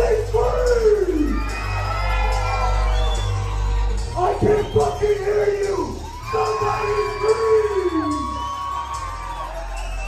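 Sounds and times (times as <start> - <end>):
crowd cheering: 0.0 - 10.0
dubstep music over speakers: 0.0 - 10.0.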